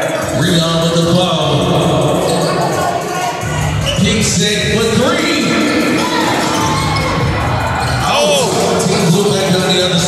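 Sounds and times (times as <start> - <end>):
background music: 0.0 - 10.0
crowd chatter: 0.0 - 10.0.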